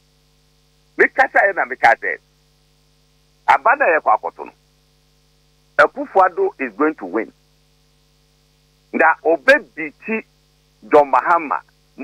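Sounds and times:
faint electrical hum: 0:00.0 - 0:12.0
man speaking: 0:01.0 - 0:02.2, 0:03.5 - 0:04.6, 0:05.8 - 0:07.3, 0:08.9 - 0:11.7.

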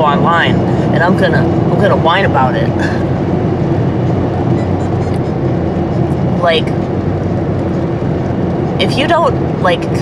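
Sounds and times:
car cabin road rumble: 0:00.0 - 0:10.0.

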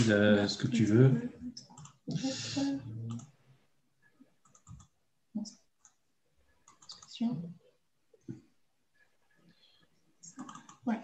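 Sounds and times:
computer mouse clicking: 0:01.6 - 0:02.2, 0:03.1 - 0:03.3, 0:04.4 - 0:05.0, 0:05.8 - 0:06.0, 0:06.6 - 0:07.2, 0:10.2 - 0:10.8.

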